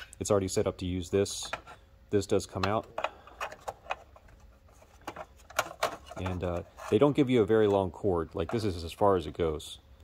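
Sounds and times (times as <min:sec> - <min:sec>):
plastic clicks and scrapes: 0:03.0 - 0:07.0.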